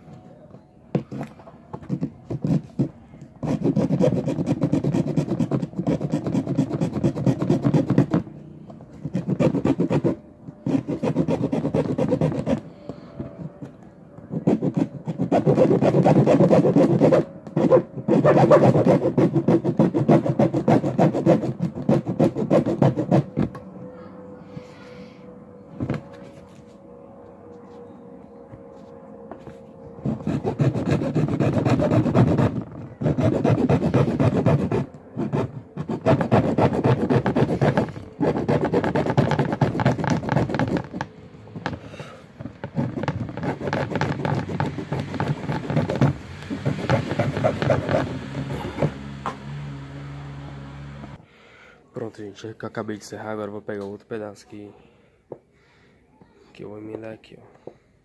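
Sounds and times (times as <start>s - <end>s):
hacksaw sawing through plastic: 1.0s - 8.2s, 9.0s - 12.6s, 14.3s - 23.5s, 30.0s - 41.8s, 42.4s - 49.1s.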